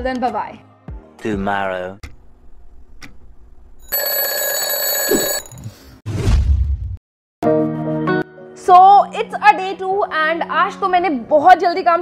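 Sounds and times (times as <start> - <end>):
alarm clock ringing: 3.9 - 5.5.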